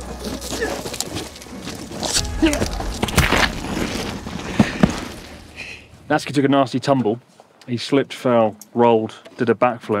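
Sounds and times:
scrapes and clatters on gravel: 0.0 - 5.7.

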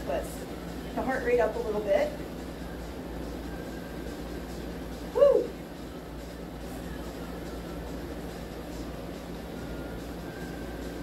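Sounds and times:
low room hum: 0.0 - 11.0
woman's whoo call: 5.1 - 5.6.

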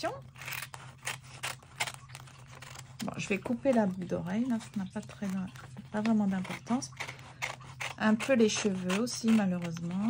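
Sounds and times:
scissors cutting paper: 0.0 - 10.0.

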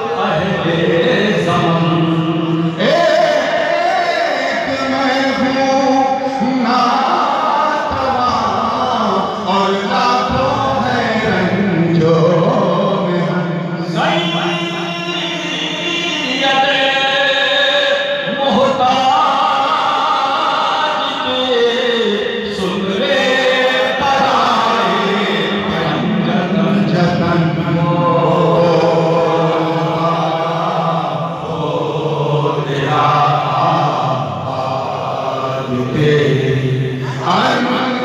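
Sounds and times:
man chanting into a microphone: 0.0 - 38.0.

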